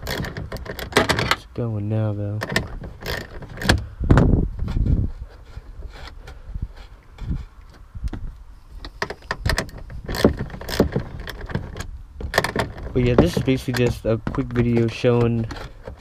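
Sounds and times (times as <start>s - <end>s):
rustle: 0.0s - 16.0s.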